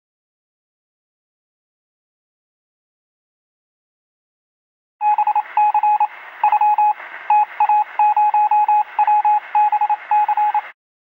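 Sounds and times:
morse code beeping tone: 5.0s - 10.7s
radio hiss: 5.3s - 10.7s.

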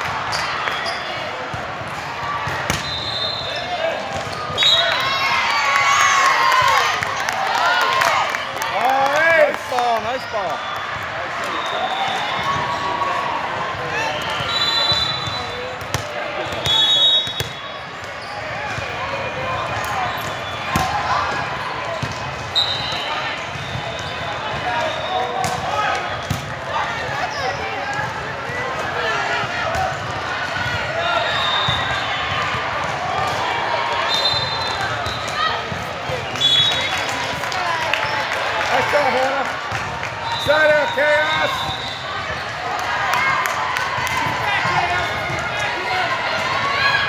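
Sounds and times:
players and spectators calling out: 0.0s - 47.0s
sneakers squeaking on court floor: 0.2s - 1.5s, 13.8s - 27.8s.

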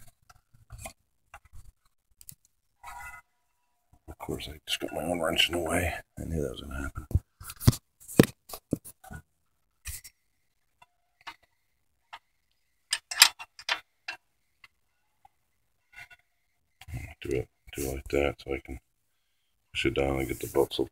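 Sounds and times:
metal wrench clicking on engine parts: 12.9s - 13.8s.

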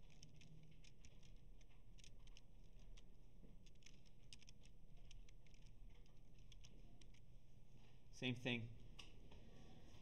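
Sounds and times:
keyboard keys typing: 0.0s - 7.3s
low room hum: 0.0s - 10.0s.

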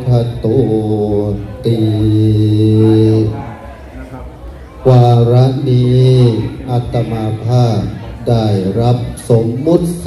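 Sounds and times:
man chanting: 0.0s - 3.8s, 4.8s - 10.0s.

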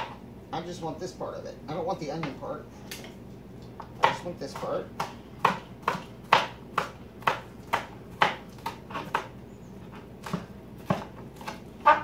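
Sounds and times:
knife chopping on cutting board: 3.9s - 9.3s, 10.2s - 12.0s.

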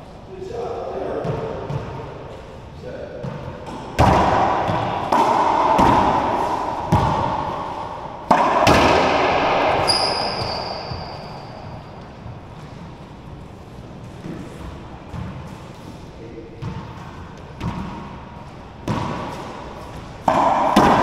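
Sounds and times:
racquet hitting ball with echo: 1.2s - 13.2s, 13.9s - 21.0s
short high squeak: 9.9s - 11.5s.

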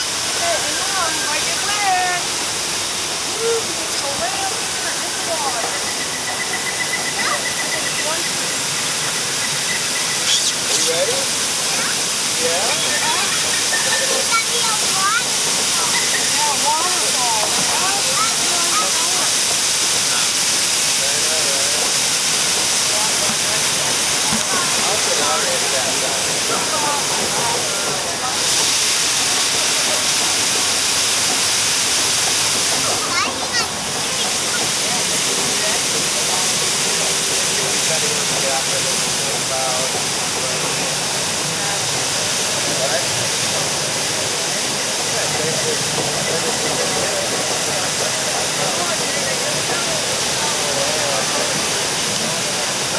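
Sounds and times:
water rushing and spraying: 0.0s - 52.9s
riders chattering: 3.0s - 52.9s.

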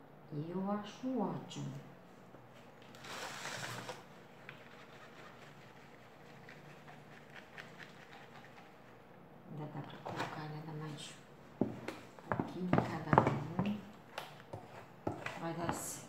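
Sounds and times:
plastic tray scraping rustle: 2.9s - 4.1s.

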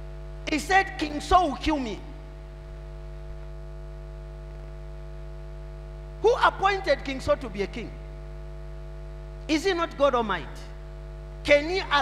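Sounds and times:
electrical mains hum: 0.0s - 12.0s.

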